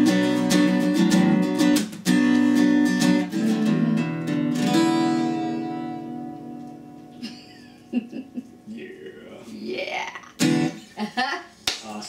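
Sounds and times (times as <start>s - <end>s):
acoustic guitar strum: 0.0s - 7.2s, 10.2s - 10.8s
people laughing: 7.2s - 8.6s, 10.9s - 11.5s.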